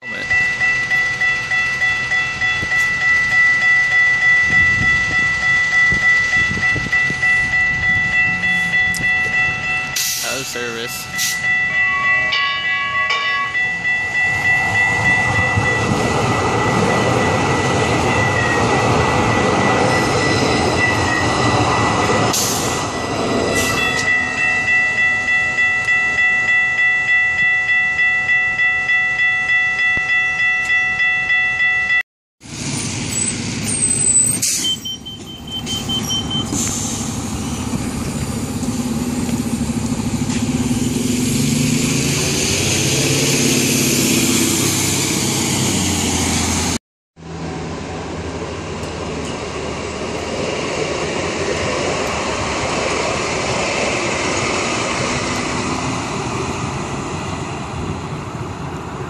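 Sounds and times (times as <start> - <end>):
level crossing warning bells: 0.0 - 32.0, 33.8 - 37.7
traffic: 0.0 - 59.0
train rumbling over crossing: 0.0 - 59.0
bus engine running: 32.4 - 58.9.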